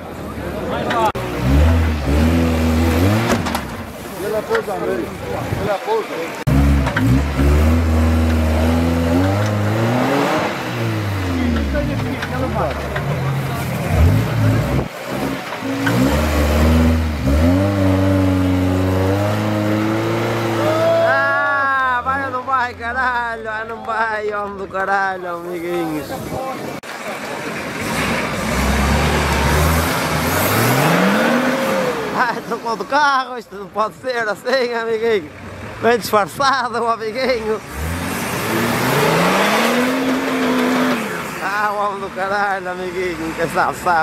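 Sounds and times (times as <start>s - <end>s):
off-road car engine revving: 0.1s - 23.4s, 25.7s - 33.7s, 34.5s - 44.0s.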